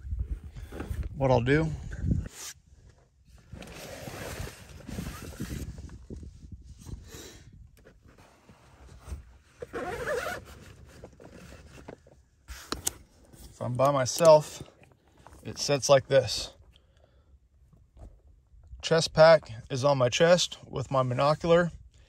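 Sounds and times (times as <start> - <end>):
zipper running: 3.5 - 5.8, 8.1 - 12.0
rustling of gear being handled: 7.8 - 15.8.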